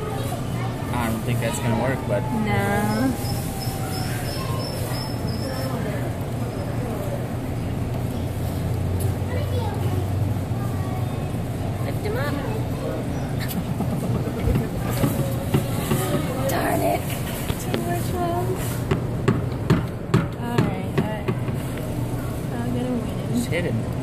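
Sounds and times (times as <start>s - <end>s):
indistinct voices: 0.0s - 18.9s.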